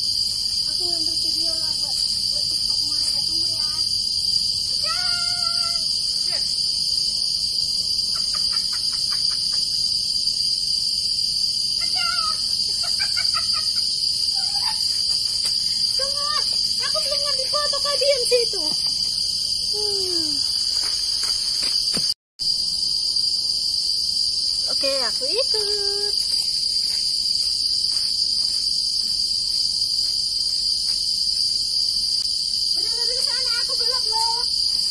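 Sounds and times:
high-pitched insect chorus: 0.0s - 34.9s.

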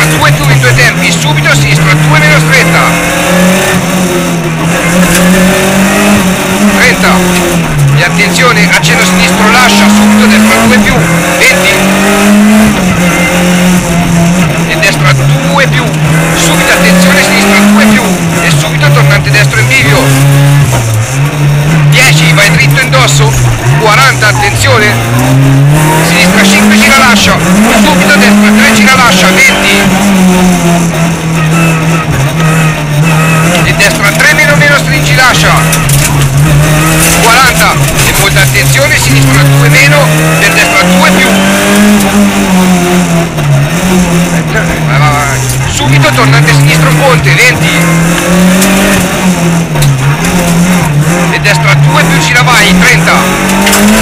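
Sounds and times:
rally car engine revving: 0.0s - 54.0s.

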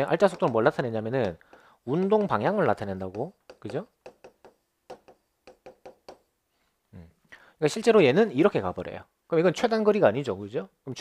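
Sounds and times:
stylus tapping on glass: 0.2s - 6.3s.

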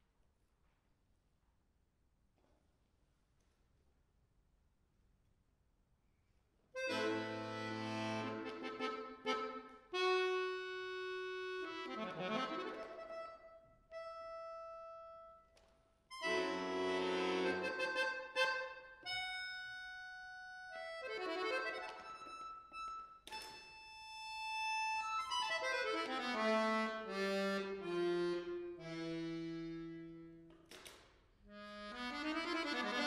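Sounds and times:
button accordion playing chords: 6.8s - 15.4s, 16.1s - 30.5s, 31.5s - 33.0s.

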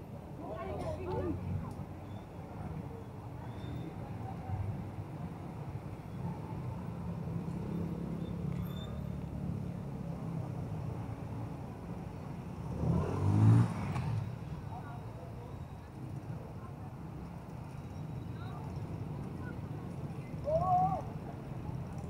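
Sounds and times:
car and motorcycle engines: 5.1s - 22.0s
vehicle passing close: 12.6s - 14.4s.

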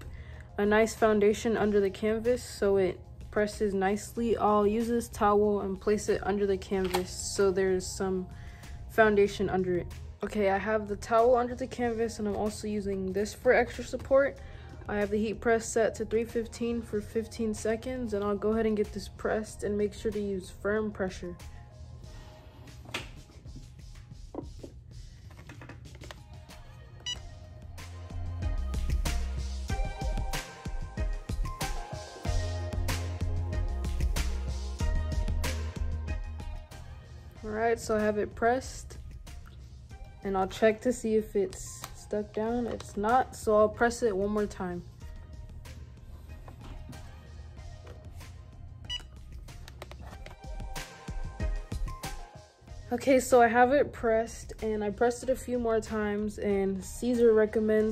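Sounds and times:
quiet background music: 0.0s - 57.9s.

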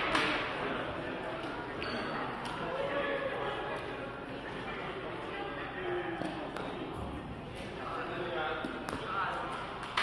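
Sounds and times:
voices echoing in hall: 0.0s - 10.0s.

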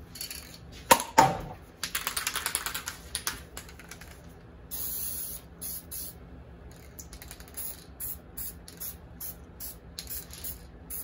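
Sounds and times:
spray can hissing: 4.7s - 6.1s.

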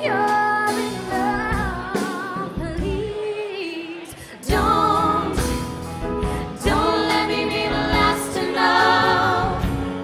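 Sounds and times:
band with drums: 0.0s - 3.2s, 4.5s - 10.0s
woman singing: 0.0s - 5.7s, 6.5s - 9.8s.

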